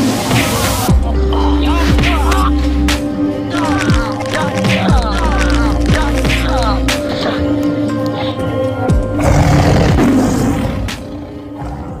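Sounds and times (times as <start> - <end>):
action film soundtrack music: 0.0 - 12.0.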